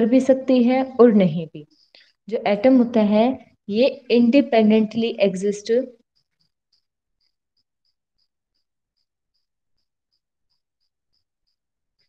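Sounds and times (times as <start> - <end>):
high insect chirp: 5.9 - 12.0.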